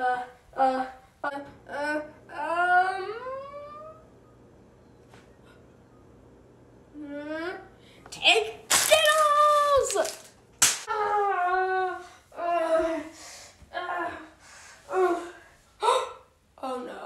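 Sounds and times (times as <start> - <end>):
sharp smack: 10.6 - 10.9.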